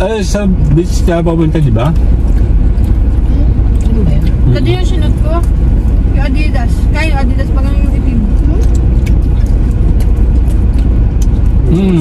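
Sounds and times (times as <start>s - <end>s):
voices: 0.0s - 10.6s, 11.5s - 12.0s
car cabin rumble: 0.0s - 12.0s.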